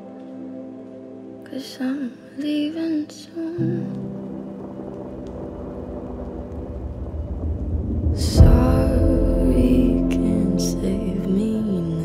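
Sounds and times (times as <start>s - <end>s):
music: 0.0s - 12.0s
low rumbling noise: 3.8s - 12.0s
loud sudden hit: 6.5s - 11.1s.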